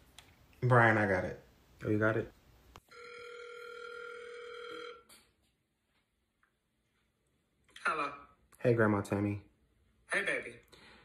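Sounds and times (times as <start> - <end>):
phone ringback tone: 2.9 - 5.1.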